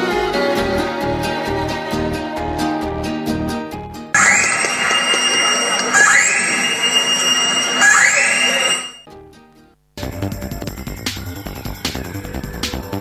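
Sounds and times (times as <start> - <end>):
music: 0.0 - 13.0
rising whine: 4.2 - 9.0.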